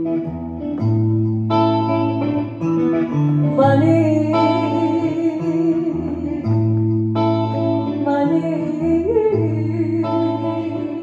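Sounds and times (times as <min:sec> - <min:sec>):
electric guitar chords: 0:00.0 - 0:11.0.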